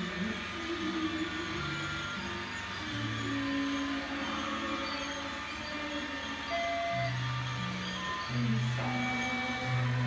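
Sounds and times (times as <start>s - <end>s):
music with held notes: 0.0s - 10.0s
toy train running: 0.0s - 10.0s.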